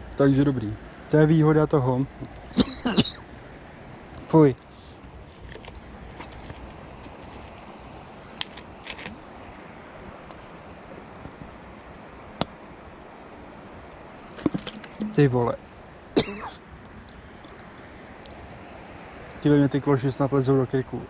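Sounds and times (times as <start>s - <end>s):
rushing outdoor background noise: 0.0s - 21.0s.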